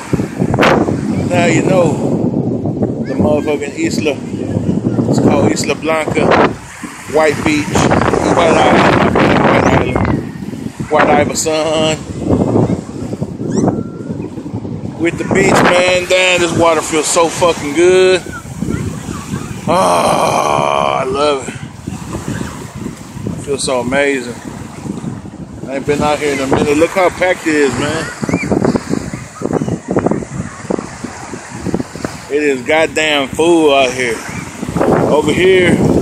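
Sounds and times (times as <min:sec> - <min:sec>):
crowd voices on beach: 0:00.0 - 0:36.0
surf breaking at shore: 0:00.0 - 0:36.0
wind buffeting microphone: 0:00.0 - 0:36.0.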